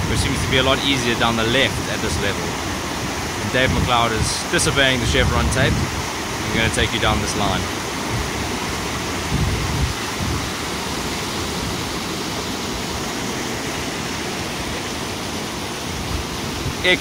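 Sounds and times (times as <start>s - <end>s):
water rushing over boulders: 0.0s - 17.0s.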